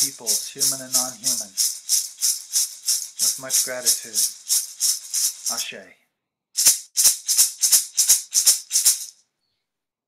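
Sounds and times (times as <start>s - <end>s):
hand rattle shaking: 0.0s - 5.8s, 6.6s - 9.2s.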